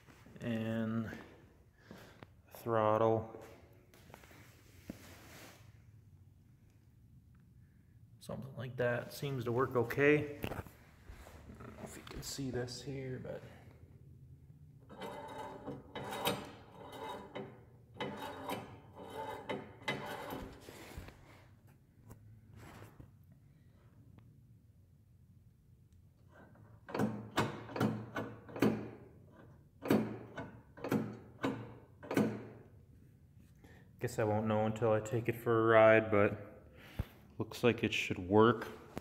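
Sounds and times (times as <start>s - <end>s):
metal linkage rubbing and clattering: 14.8s - 20.7s.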